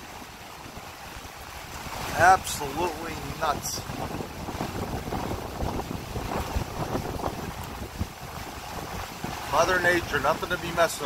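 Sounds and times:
choppy water: 0:00.0 - 0:11.0
driving rain hiss: 0:00.0 - 0:11.0
wind buffeting microphone: 0:00.0 - 0:11.0.

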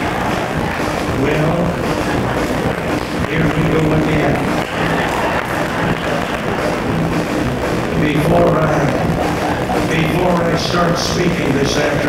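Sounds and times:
live country band music: 0:00.0 - 0:12.0.

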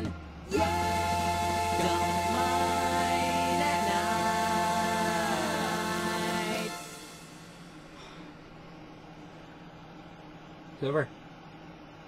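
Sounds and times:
low hum: 0:00.0 - 0:10.7.

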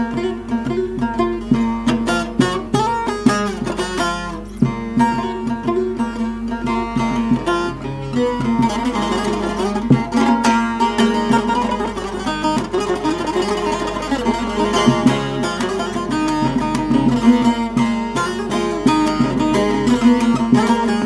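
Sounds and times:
long-neck lute picked melody: 0:00.0 - 0:21.0.

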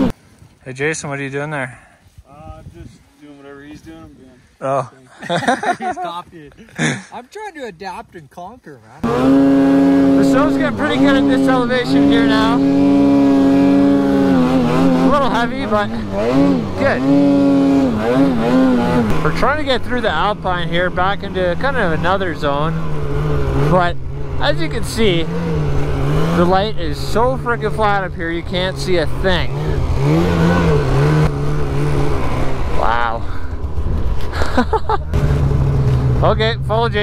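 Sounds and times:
snowmobile engine revving: 0:09.0 - 0:37.0.

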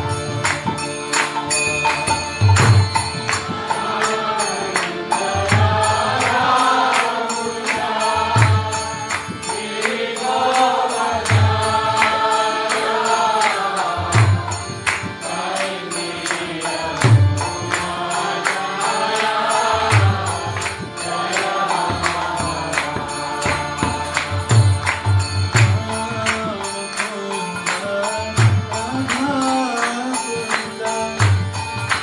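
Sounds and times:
harmonium chords: 0:00.0 - 0:32.0.

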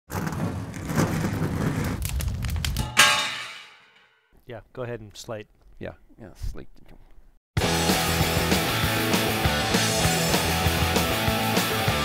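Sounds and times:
ringing impact hit: 0:02.8 - 0:04.1.

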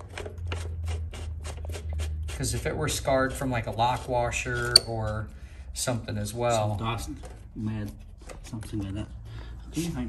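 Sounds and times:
metal nut clicking and scraping: 0:04.4 - 0:05.3.

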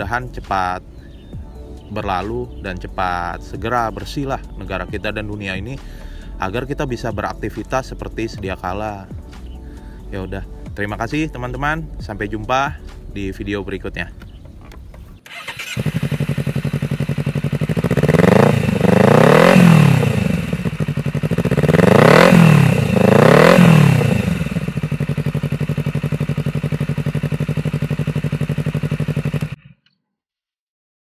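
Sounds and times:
motorcycle engine idling and revving: 0:00.0 - 0:29.6.

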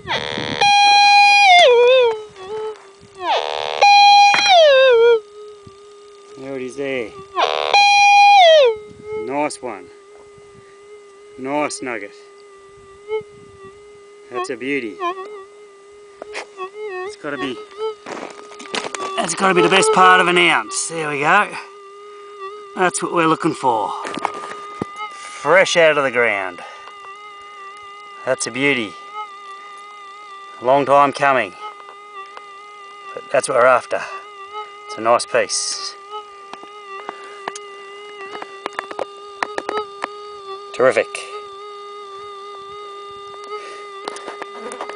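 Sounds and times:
metal detector beep: 0:00.0 - 0:05.2, 0:07.4 - 0:09.4, 0:16.9 - 0:21.4
metal detector buzzing tone: 0:00.0 - 0:44.9.

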